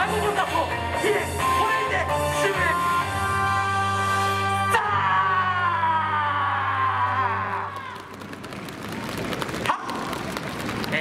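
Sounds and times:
audience clapping: 7.5 - 11.0.

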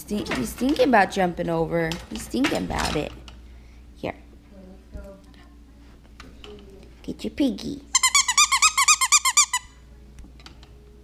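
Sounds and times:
squeaky dog toy squeaks: 7.9 - 9.8.

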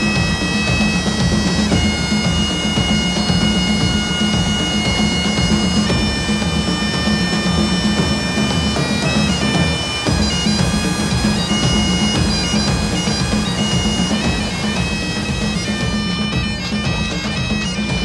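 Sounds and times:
bagpipes playing a tune: 0.0 - 18.0
pulsing drum beat: 0.0 - 18.0.

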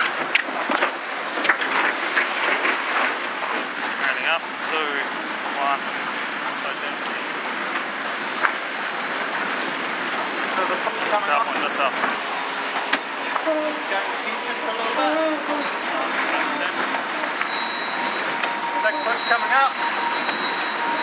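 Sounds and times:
rush of wind and water: 0.0 - 21.0.

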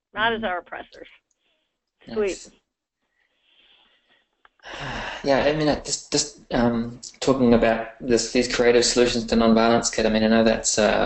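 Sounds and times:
man speaking: 2.1 - 2.5, 4.7 - 11.0.

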